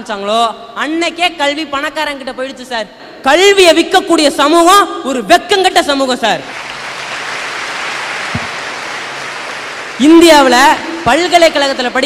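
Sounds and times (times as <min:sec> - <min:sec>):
audience applauding: 0:06.4 - 0:12.0.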